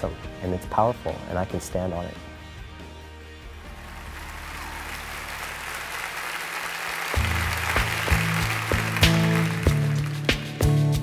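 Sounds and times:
audience applause: 0:03.6 - 0:10.7.

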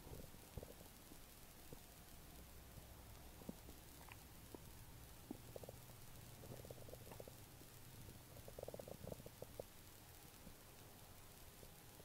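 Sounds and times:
faint ticks and clicks: 0:00.0 - 0:12.0.

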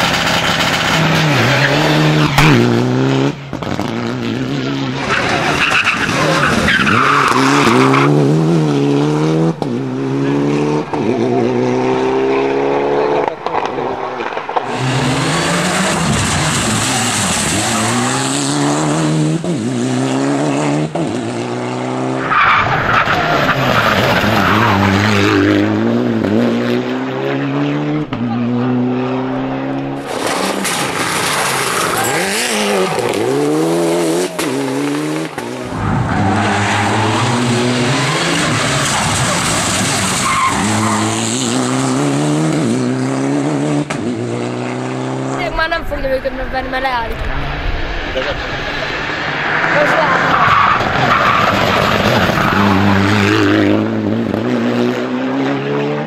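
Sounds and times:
rally car engine revving hard: 0:00.0 - 0:45.5, 0:48.2 - 0:56.0
tyres skidding on loose surface: 0:04.6 - 0:08.5, 0:29.8 - 0:43.0, 0:45.2 - 0:54.4.

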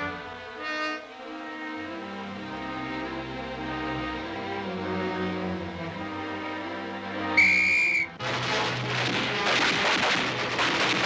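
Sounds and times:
orchestral strings: 0:00.0 - 0:10.7
signal whistle blast: 0:07.4 - 0:08.2.

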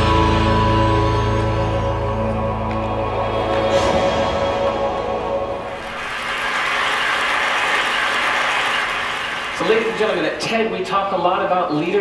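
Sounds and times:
audience applause: 0:05.6 - 0:10.4.

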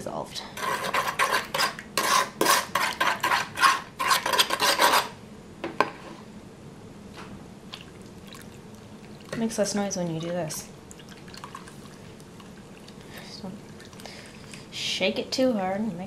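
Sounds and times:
metal spoon stirring in plastic bowl: 0:00.6 - 0:05.1.

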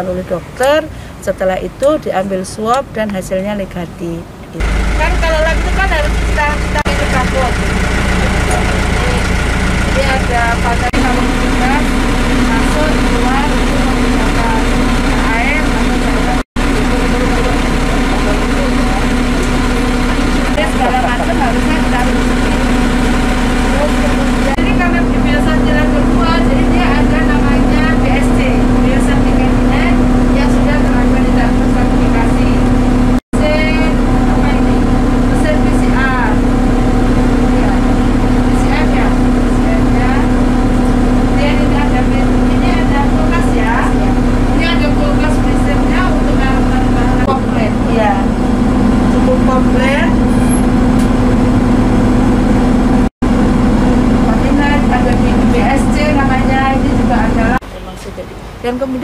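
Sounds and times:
machine hum: 0:00.0 - 0:59.0.

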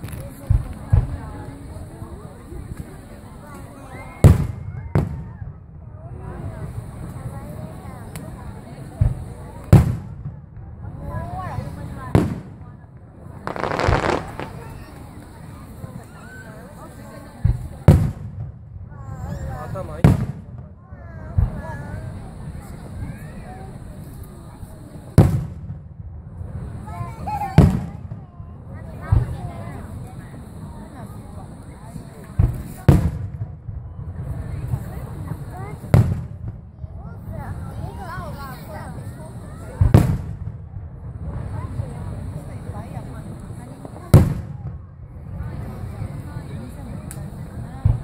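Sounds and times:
firework booms: 0:04.2 - 0:07.4, 0:08.0 - 0:16.5, 0:17.1 - 0:30.7, 0:31.8 - 0:48.0
firework shell bursting: 0:13.4 - 0:15.8.

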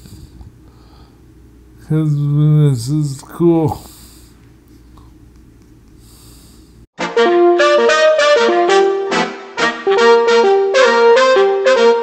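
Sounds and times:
soft breath: 0:00.0 - 0:01.2, 0:03.8 - 0:05.1, 0:05.9 - 0:06.9
low steady hum: 0:00.0 - 0:06.9.

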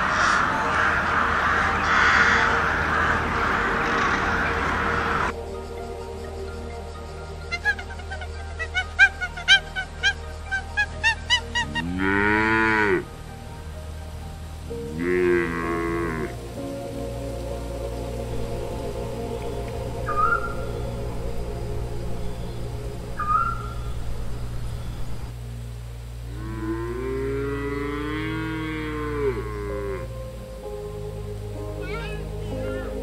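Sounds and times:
background music: 0:00.0 - 0:33.0
cattle mooing: 0:11.6 - 0:13.1, 0:14.9 - 0:16.4, 0:26.3 - 0:30.1
high chirps: 0:16.6 - 0:25.3.

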